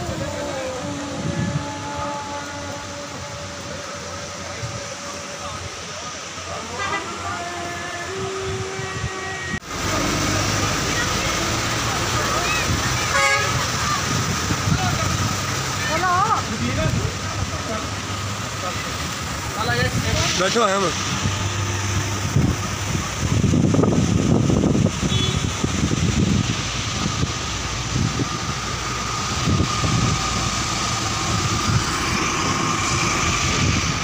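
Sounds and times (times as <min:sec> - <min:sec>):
vehicle road and engine noise: 0:00.0 - 0:34.0
car horn tooting: 0:06.7 - 0:07.4, 0:13.0 - 0:13.6, 0:25.0 - 0:25.6.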